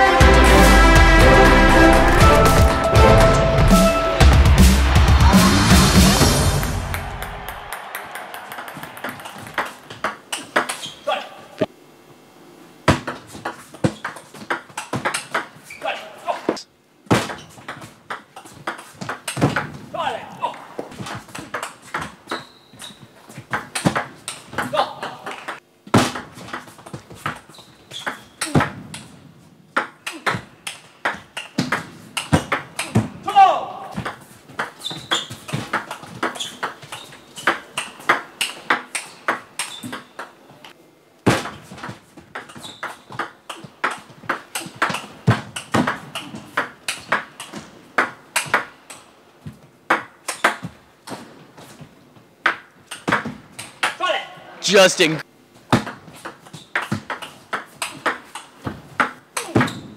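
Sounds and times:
table tennis ball on bats: 6.9 - 11.0, 20.8 - 33.2, 33.9 - 40.4, 41.2 - 51.2, 55.7 - 59.9.

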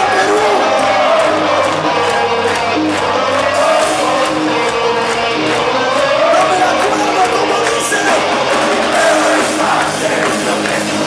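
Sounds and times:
crowd voices: 0.0 - 11.0
drums: 0.0 - 11.0
electric guitars: 0.0 - 11.0.

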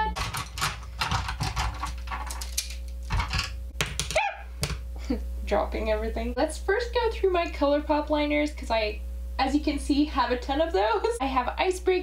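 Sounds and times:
plastic pencils clicking and clattering: 0.0 - 4.2.

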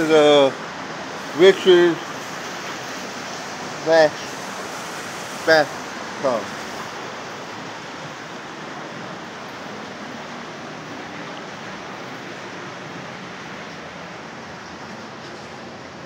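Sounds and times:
stream rushing through rock gorge: 0.0 - 16.0.

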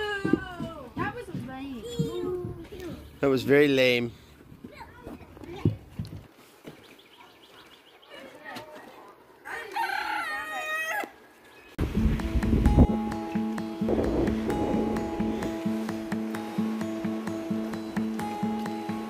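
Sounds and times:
rooster crowing: 9.4 - 11.2
background music with steady beat: 11.8 - 19.0.

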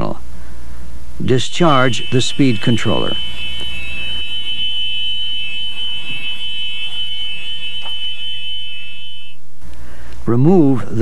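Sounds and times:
high-pitched reverse warning buzzer: 1.4 - 9.4.

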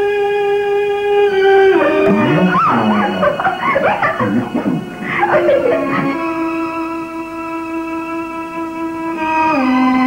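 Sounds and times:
film background music: 1.4 - 6.9
pitch-gliding vocal sounds: 1.5 - 6.6.

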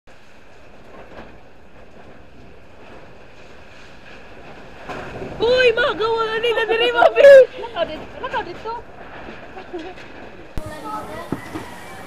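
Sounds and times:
steady background hiss: 0.1 - 12.0.

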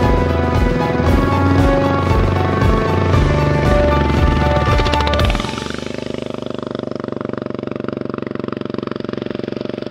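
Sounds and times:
music: 0.0 - 6.1
motorcycle engine running: 0.0 - 9.9.

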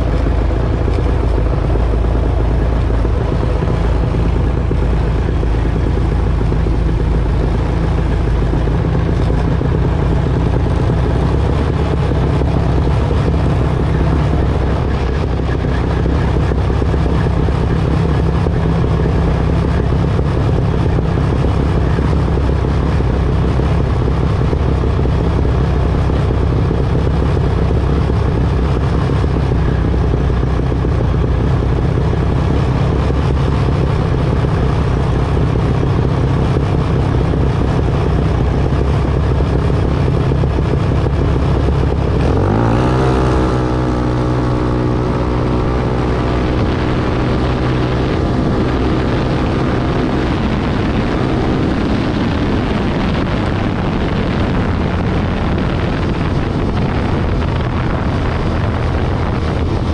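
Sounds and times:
dragster engine idling and revving: 0.0 - 59.9.

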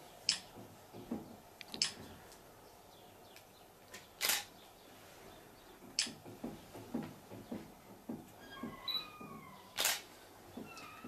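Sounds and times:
soft low knocks: 5.8 - 9.7.

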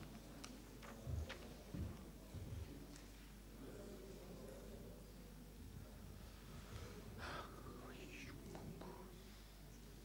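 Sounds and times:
faint whispered speech: 0.0 - 10.0.

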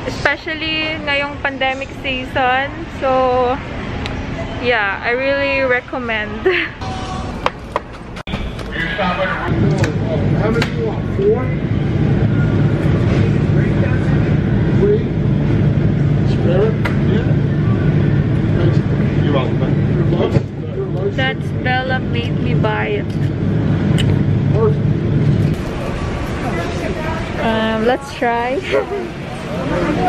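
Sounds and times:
refrigerated display cases humming: 0.0 - 30.0
indistinct voices: 8.6 - 30.0.

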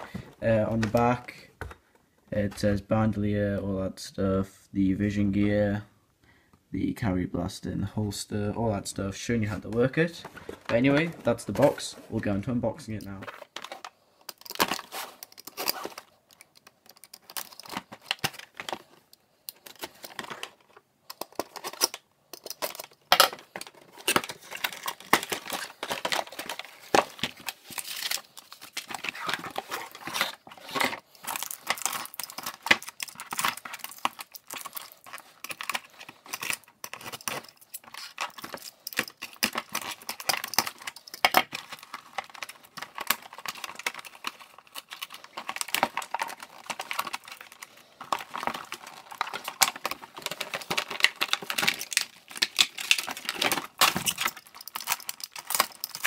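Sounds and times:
plastic wrap crinkling and tearing: 13.4 - 56.0.

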